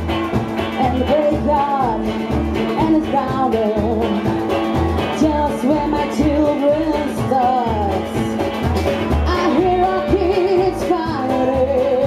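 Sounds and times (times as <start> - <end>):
drums: 0.0 - 12.0
electric guitar: 0.0 - 12.0
woman singing: 0.7 - 8.5, 9.2 - 12.0.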